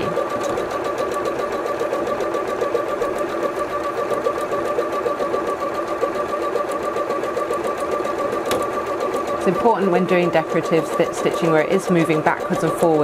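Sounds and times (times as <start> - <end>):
sewing machine stitching: 0.0 - 13.0.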